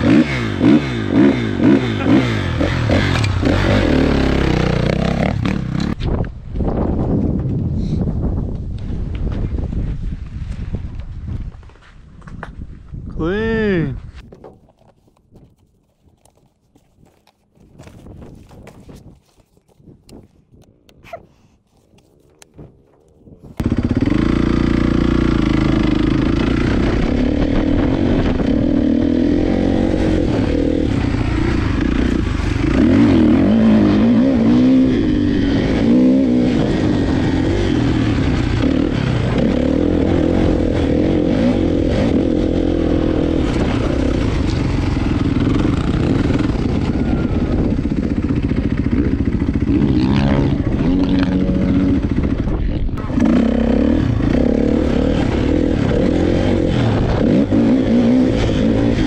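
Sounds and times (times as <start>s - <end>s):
dirt bike engine revving: 0.0s - 6.0s, 23.6s - 59.0s.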